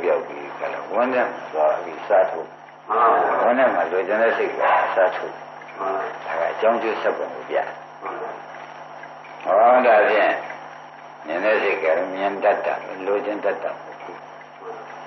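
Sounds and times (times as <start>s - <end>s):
elderly man preaching: 0.0s - 7.8s, 9.4s - 10.5s, 11.2s - 14.1s
faint high whine: 0.0s - 15.0s.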